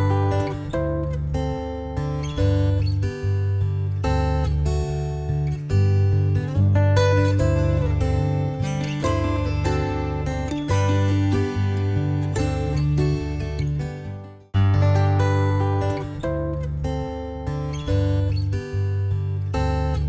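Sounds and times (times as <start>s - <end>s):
guitar-led music with bass: 0.0s - 20.0s.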